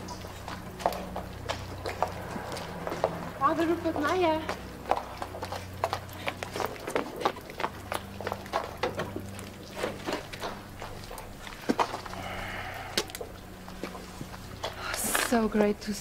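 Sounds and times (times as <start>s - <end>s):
footsteps on wet street: 0.0s - 16.0s.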